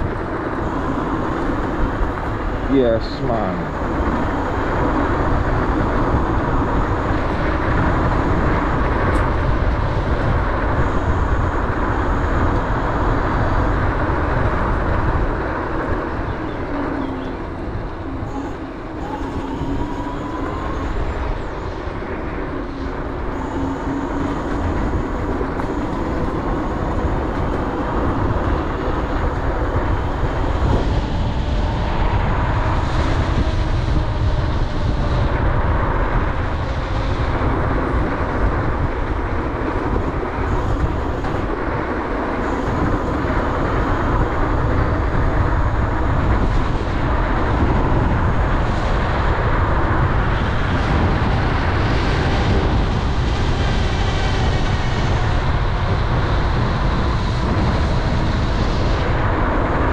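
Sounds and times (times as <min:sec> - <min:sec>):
electric motor whine: 0:00.0 - 0:59.9
wind rushing over microphone: 0:00.0 - 0:59.9.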